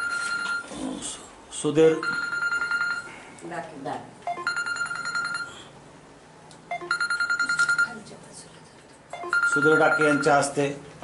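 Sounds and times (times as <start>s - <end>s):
electronic ringtone: 0.0s - 0.7s, 2.0s - 3.1s, 4.3s - 5.7s, 6.7s - 8.0s, 9.2s - 10.5s.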